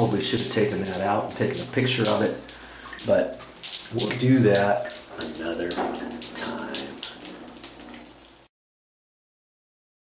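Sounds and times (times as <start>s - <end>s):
water dripping in shower: 0.0s - 8.5s.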